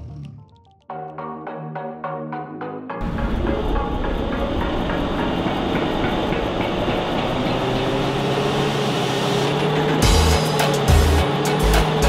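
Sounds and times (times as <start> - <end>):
synth music: 0.2 - 12.0
car engine running: 3.0 - 12.0
wheels clattering on rollers: 3.0 - 12.0.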